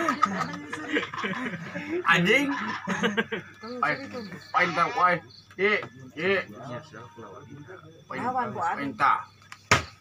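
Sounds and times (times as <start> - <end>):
man and woman laughing: 0.0 - 3.6.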